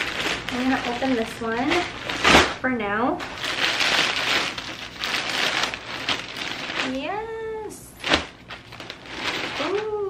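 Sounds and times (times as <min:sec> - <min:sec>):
plastic bag tearing: 0:00.0 - 0:02.6, 0:03.2 - 0:07.2, 0:08.0 - 0:10.0
plastic mailer bag crinkling: 0:00.0 - 0:02.6, 0:03.2 - 0:10.0.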